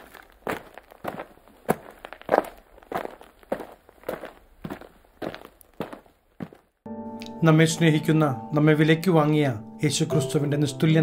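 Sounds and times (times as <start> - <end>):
footsteps tapping: 0.0 - 7.4.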